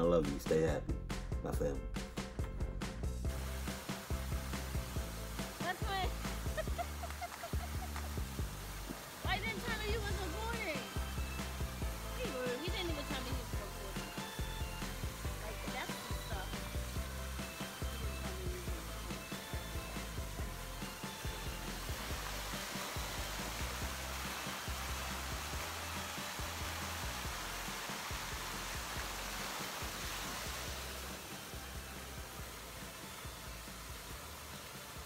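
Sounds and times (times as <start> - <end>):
music with bass beat: 0.0 - 34.4
water fountain spraying: 3.2 - 35.0.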